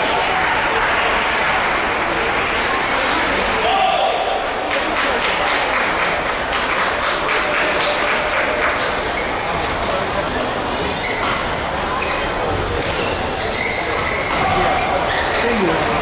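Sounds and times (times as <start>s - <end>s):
voices and chatter: 0.0s - 16.0s.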